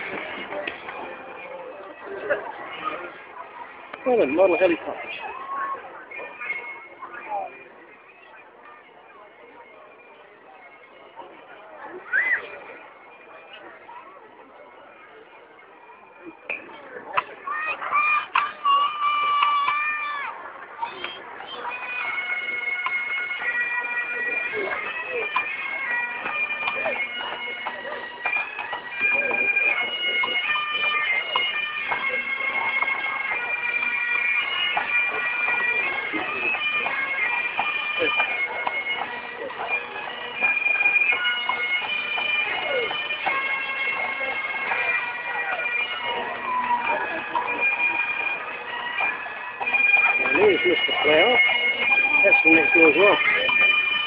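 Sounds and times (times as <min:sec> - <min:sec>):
spectators' voices: 0:00.0 - 0:54.0
bagpipes playing: 0:03.9 - 0:05.2, 0:17.5 - 0:54.0.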